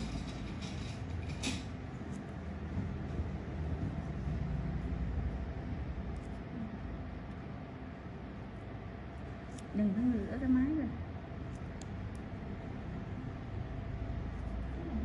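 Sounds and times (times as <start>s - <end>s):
faint hum: 0.0s - 15.0s
steady low rumble: 0.0s - 15.0s.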